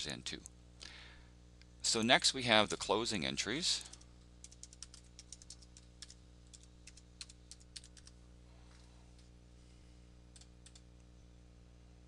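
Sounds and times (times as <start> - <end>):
low steady hum: 0.0 - 12.0
keyboard typing: 3.9 - 8.2, 10.4 - 10.8.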